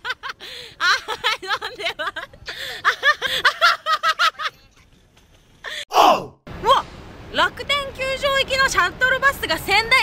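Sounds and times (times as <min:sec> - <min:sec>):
outdoor background noise: 0:00.0 - 0:10.0
woman speaking: 0:07.4 - 0:10.0.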